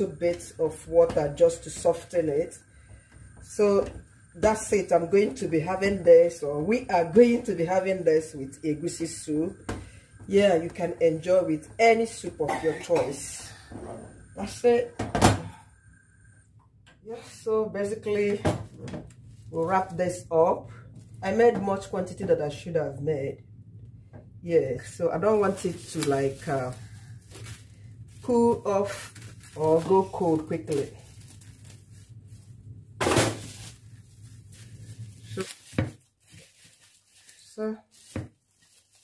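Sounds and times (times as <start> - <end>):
faint steady low hum: 0.0 - 35.7.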